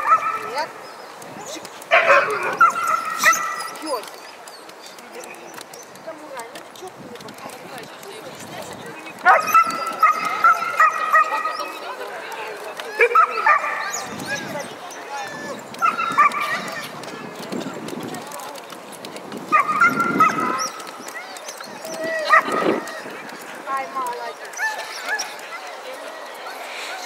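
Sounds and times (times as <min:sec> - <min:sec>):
dogs yipping and barking: 0:00.0 - 0:06.1, 0:09.2 - 0:17.4, 0:19.4 - 0:27.0
crowd murmur: 0:00.0 - 0:27.0.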